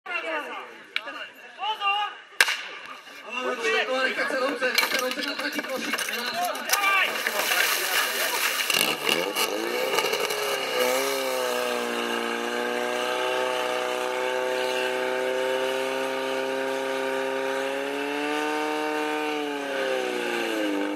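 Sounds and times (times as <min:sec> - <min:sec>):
knocks and water splashes: 0:04.8 - 0:09.6
pump engine running at high revs: 0:04.8 - 0:20.9.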